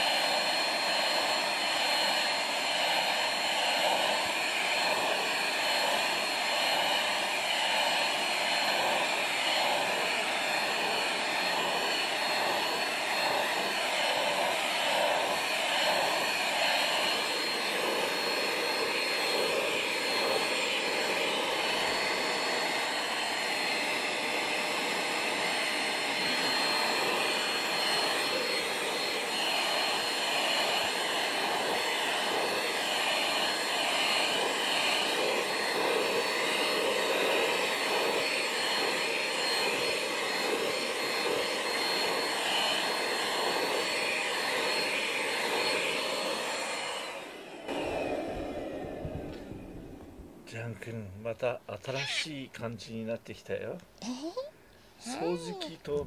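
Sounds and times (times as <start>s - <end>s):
handheld vacuum cleaner whine: 0.0s - 50.7s, 51.8s - 52.4s.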